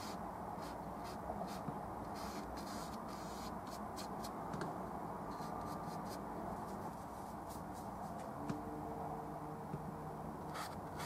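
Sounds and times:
low background hum: 0:00.0 - 0:11.0
brush scrubbing canvas: 0:05.4 - 0:08.2.

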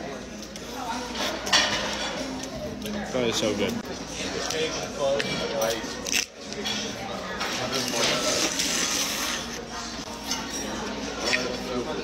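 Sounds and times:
restaurant chatter: 0:00.0 - 0:12.0.

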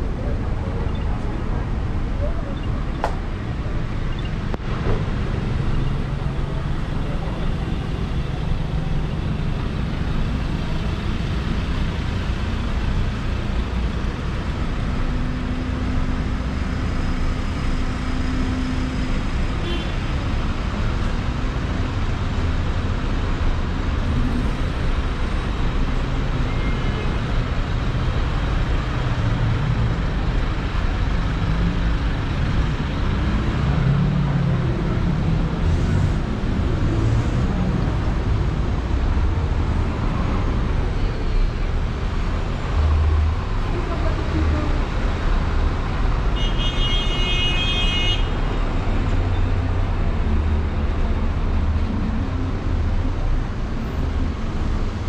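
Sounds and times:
cars passing on road: 0:00.0 - 0:55.0.

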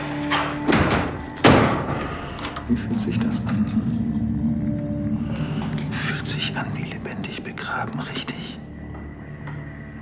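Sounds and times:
low steady drone: 0:01.9 - 0:10.0.

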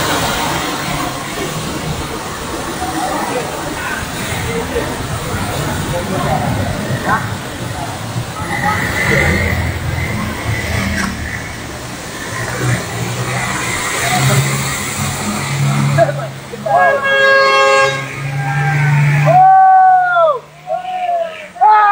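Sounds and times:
crowd voices: 0:00.0 - 0:21.9
floodwater rushing: 0:00.0 - 0:21.9
people shouting: 0:16.6 - 0:17.2, 0:18.0 - 0:21.9
vehicle horn honking: 0:16.7 - 0:19.0.

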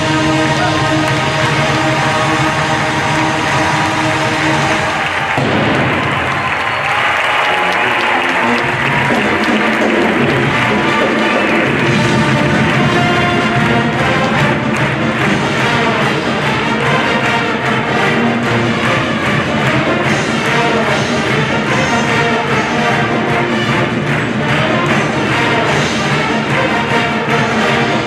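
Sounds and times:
audience applause: 0:00.0 - 0:28.0
audience cheering: 0:00.0 - 0:28.0
marching band playing: 0:00.0 - 0:28.0.

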